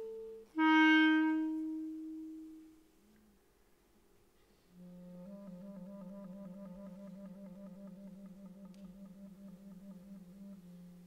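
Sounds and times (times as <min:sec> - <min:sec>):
clarinet trill: 0:00.0 - 0:02.8, 0:04.8 - 0:11.0.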